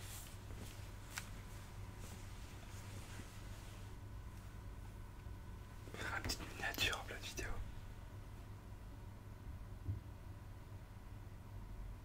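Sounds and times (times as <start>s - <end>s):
man whispering: 5.9s - 7.8s.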